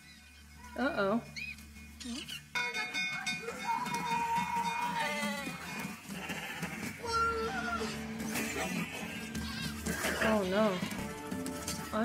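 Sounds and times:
bell ringing: 2.6s - 5.3s
sheep bleating: 3.8s - 11.2s.

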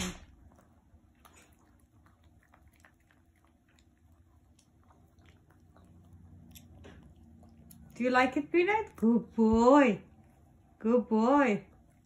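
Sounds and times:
dog chewing and lapping: 0.0s - 9.3s.

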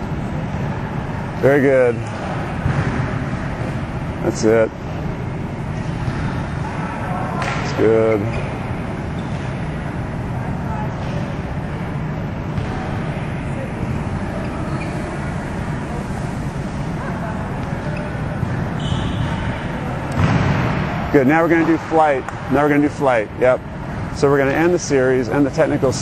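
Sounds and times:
indoor gym background noise: 0.0s - 26.0s
faint voices: 0.1s - 26.0s.

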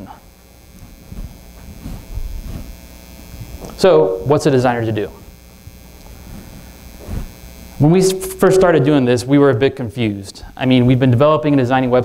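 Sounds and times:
electrical mains hum: 0.0s - 12.0s
soft low thumps: 0.6s - 3.6s.

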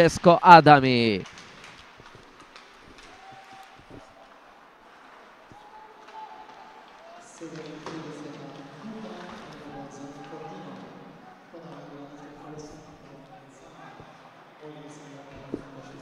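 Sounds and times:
hockey sticks and puck clicking: 1.2s - 10.9s
players shouting: 2.7s - 16.0s.

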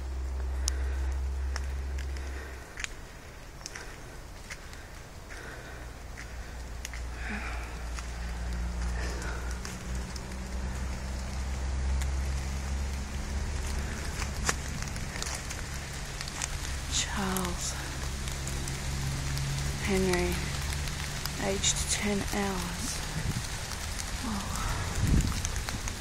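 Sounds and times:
drops ticking on leaves: 0.0s - 26.0s
low microphone rumble: 0.0s - 26.0s
rain dripping through canopy: 0.0s - 26.0s.

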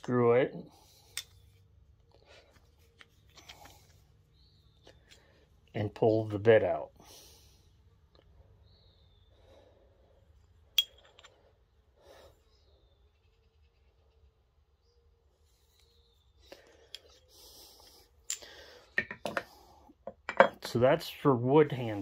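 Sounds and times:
tools clicking and knocking: 10.8s - 11.4s, 18.2s - 20.8s.

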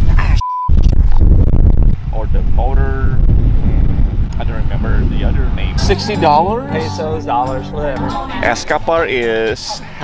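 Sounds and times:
wind buffeting microphone: 0.0s - 8.1s
short single-pitch beep: 0.4s - 0.8s
person speaking: 5.7s - 8.6s.

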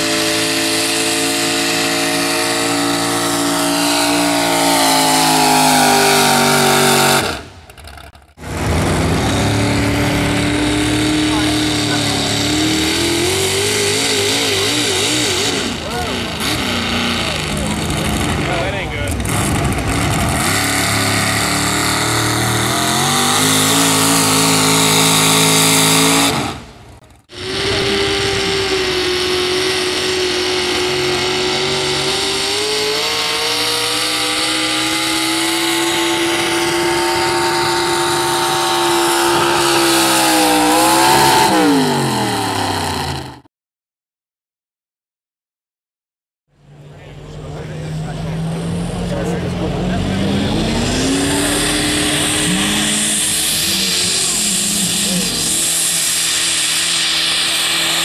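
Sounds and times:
truck engine revving under load: 0.0s - 43.5s, 46.5s - 58.0s.

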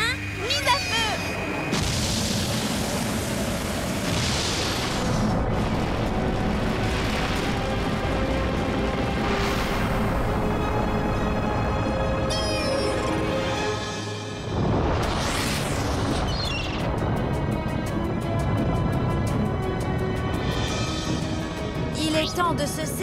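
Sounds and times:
music: 0.0s - 1.8s, 5.3s - 23.0s.

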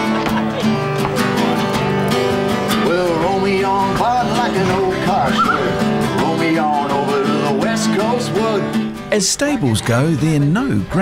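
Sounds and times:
strummed acoustic guitar: 0.0s - 11.0s
man singing: 2.7s - 11.0s.

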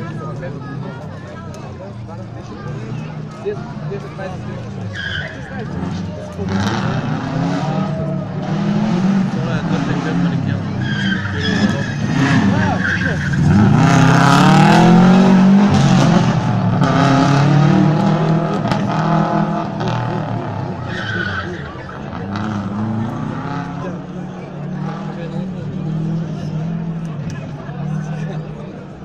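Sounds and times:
rally car engine revving hard: 5.2s - 28.6s.

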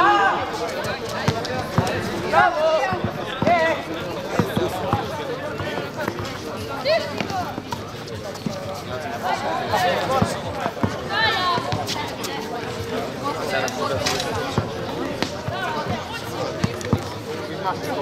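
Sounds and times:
players shouting: 0.0s - 5.6s, 9.2s - 12.4s.

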